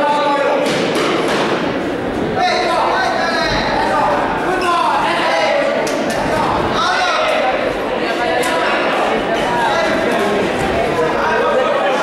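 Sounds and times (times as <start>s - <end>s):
voices shouting: 2.4s - 10.5s.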